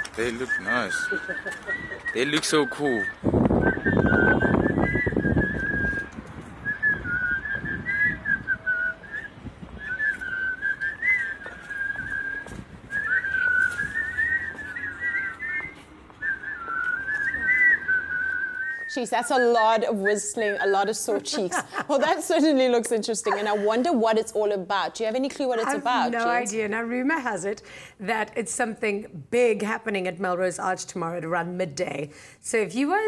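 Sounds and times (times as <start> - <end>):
group whistling a tune: 0.0 - 20.6, 25.6 - 26.4.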